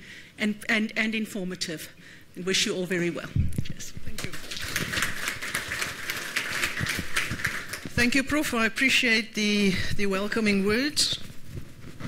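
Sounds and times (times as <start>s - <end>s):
audience applauding: 4.2s - 8.0s.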